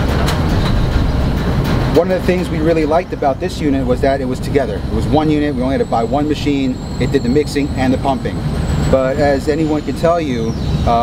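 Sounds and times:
concrete mixing machine rumbling: 0.0 - 11.0
faint irregular rattling: 0.0 - 11.0.

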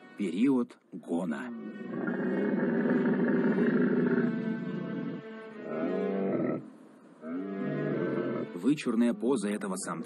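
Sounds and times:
camel bellowing: 1.4 - 8.6.

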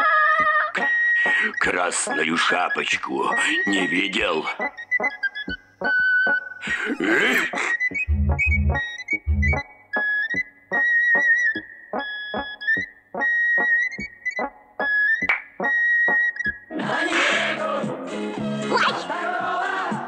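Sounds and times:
staccato keyboard notes: 6.7 - 9.6
low bass thuds: 8.1 - 9.6.

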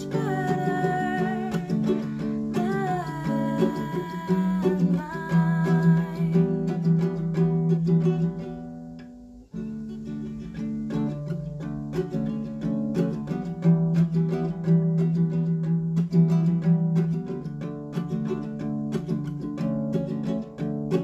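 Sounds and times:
woman singing: 0.0 - 7.3
ukulele strumming: 0.0 - 21.0.

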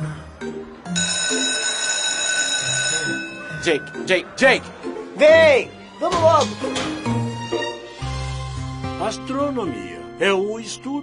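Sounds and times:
background music low notes: 0.0 - 11.0
school bell ringing: 0.9 - 4.6.

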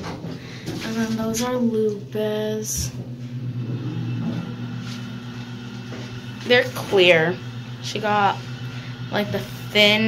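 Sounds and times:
elevator low hum: 0.0 - 10.0.

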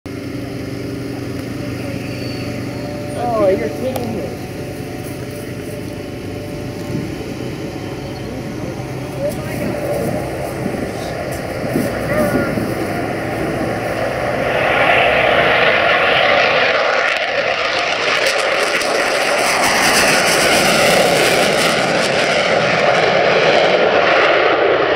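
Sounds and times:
jet flyby roar: 0.1 - 24.9.

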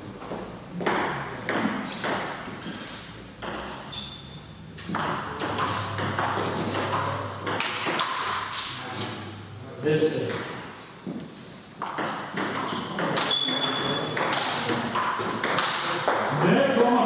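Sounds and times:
ping pong ball clicks: 4.8 - 8.7.

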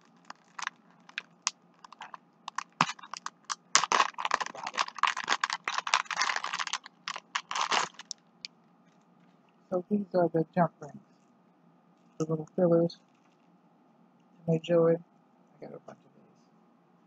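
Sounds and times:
plastic packaging clicking: 0.0 - 8.2.

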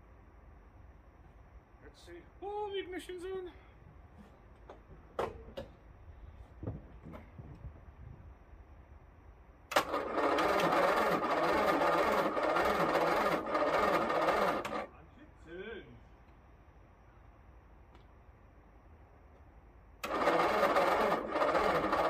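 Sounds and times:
starter motor cranking engine: 9.7 - 14.9, 20.0 - 22.0.

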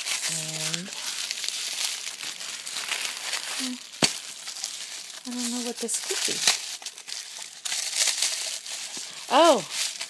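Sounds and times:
wrapping paper crinkling: 0.0 - 10.0.

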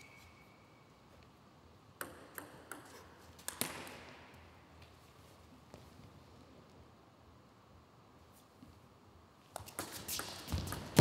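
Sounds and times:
table tennis ball bouncing: 2.0 - 4.0, 9.6 - 11.0.

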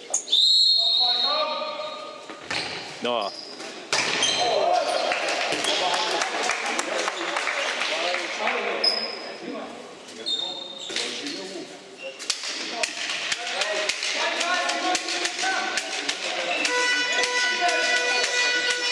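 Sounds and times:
shoe squeaks: 0.0 - 4.5, 8.8 - 9.3, 10.1 - 12.3
ball bouncing on hall floor: 2.3 - 2.9, 3.9 - 4.6, 12.2 - 18.9.

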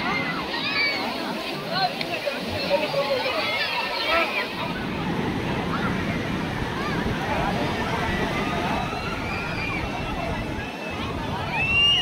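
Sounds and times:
beach crowd chattering: 0.0 - 12.0
sea surf washing in: 0.0 - 12.0
wind buffeting microphone: 4.5 - 12.0.

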